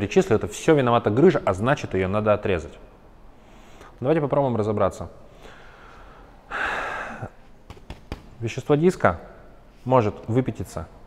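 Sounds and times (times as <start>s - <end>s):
man's sharp intake of breath: 3.4s - 4.0s, 5.3s - 7.4s.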